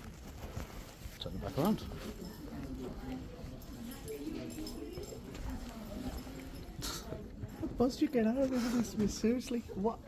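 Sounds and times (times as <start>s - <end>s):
rustling handling noise: 0.0s - 7.6s
faint voices: 1.0s - 10.0s.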